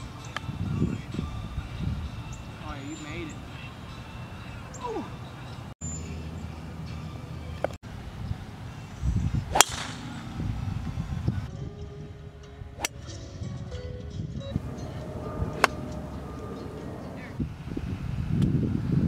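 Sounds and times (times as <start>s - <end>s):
golf club striking ball: 9.5s - 10.3s, 14.6s - 17.2s
steady low rumble: 14.5s - 18.8s.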